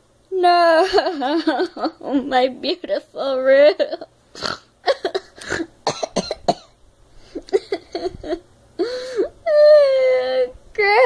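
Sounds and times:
girl coughing: 4.4 - 6.8.

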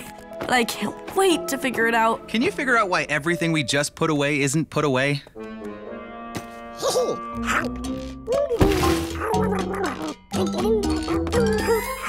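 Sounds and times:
background music: 0.0 - 4.6, 5.3 - 12.0
cartoon dragon babbling: 9.2 - 12.0.

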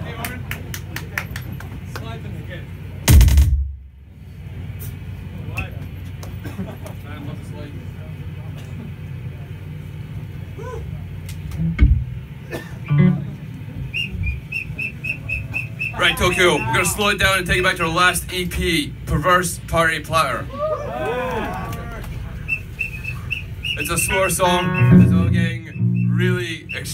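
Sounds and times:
crowd chatter: 0.0 - 3.1, 4.2 - 11.5, 12.2 - 19.0, 20.2 - 26.9
low amplifier hum: 0.0 - 26.9
short high notes: 22.5 - 26.9.

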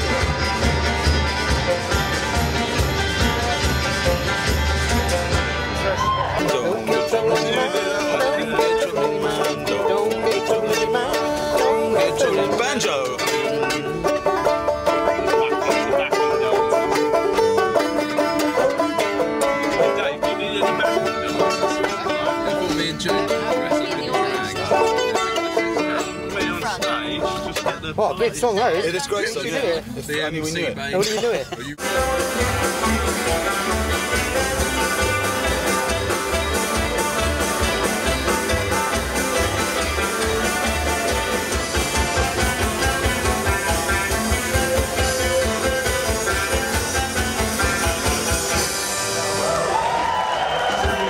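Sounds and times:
acoustic string band: 0.0 - 51.0
banjo picking: 0.0 - 51.0
upright bass: 0.0 - 51.0.

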